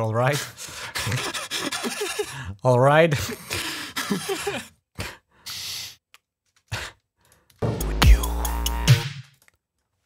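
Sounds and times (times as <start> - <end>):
electronic drums with deep bass: 7.7 - 9.1.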